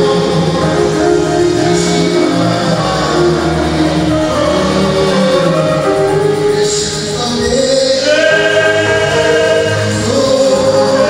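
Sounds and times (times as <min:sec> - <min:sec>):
group singing gospel song: 0:00.0 - 0:11.0.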